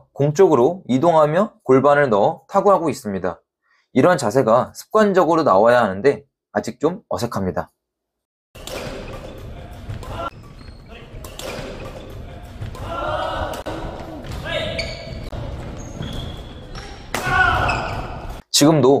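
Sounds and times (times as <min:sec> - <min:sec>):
shoe squeaks: 0:08.6 - 0:13.4, 0:14.2 - 0:18.4
rackets striking shuttlecock: 0:08.6 - 0:15.4, 0:16.0 - 0:18.4
footfalls on wooden court: 0:08.6 - 0:18.4
players' voices: 0:08.7 - 0:18.8.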